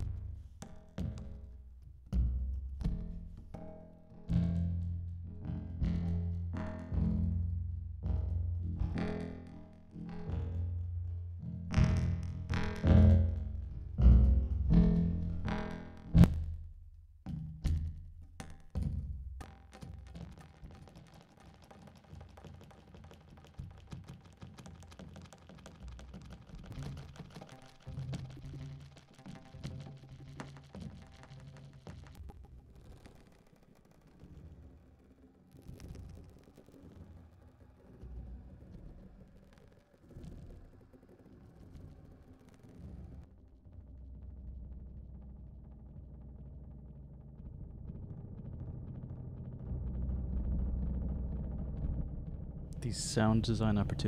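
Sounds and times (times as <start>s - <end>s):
bass-heavy percussion hits with echoes: 11.7s - 16.6s.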